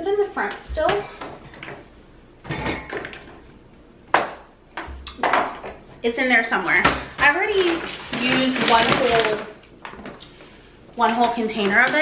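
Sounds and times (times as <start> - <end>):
groceries knocking together: 6.8 - 10.3
paper bag crinkling: 7.1 - 12.0.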